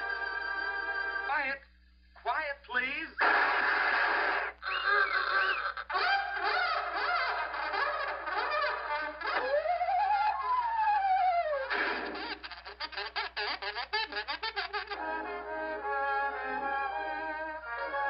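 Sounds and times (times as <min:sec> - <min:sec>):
cartoon soundtrack music: 0:05.9 - 0:18.0.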